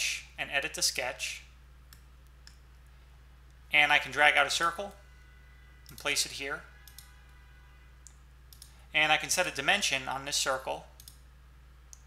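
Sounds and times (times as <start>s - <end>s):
low steady hum: 0.0s - 12.0s
computer mouse clicks: 6.8s - 7.1s, 8.0s - 8.8s, 11.0s - 11.2s.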